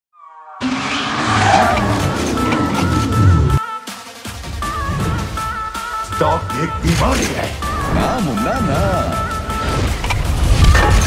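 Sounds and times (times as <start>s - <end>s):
car engine running: 0.6s - 3.6s
car tyres skidding: 0.6s - 3.6s.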